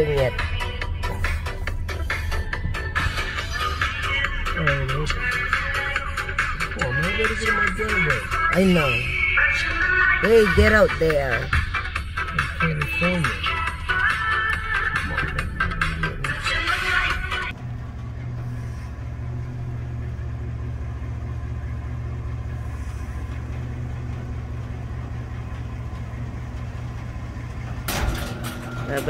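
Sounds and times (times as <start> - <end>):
car engine idling: 0.0 - 29.0.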